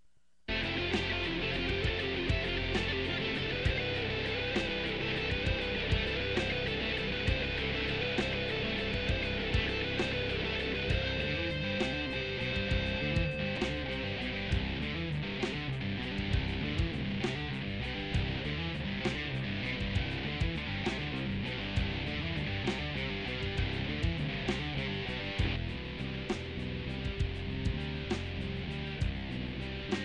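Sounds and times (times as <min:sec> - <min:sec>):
band track with drums and guitar: 0:00.5 - 0:30.0
electric bass playing: 0:00.5 - 0:30.0.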